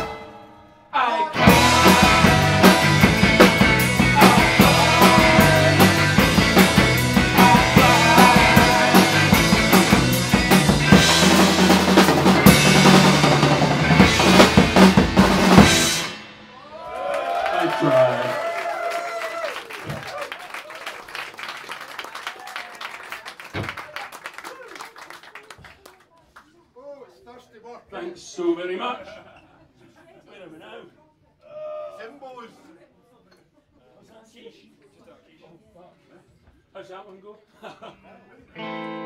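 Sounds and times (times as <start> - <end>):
audience clapping and cheering: 1.4 - 9.9, 16.7 - 26.4
live rock band playing: 1.4 - 16.7, 38.5 - 39.0.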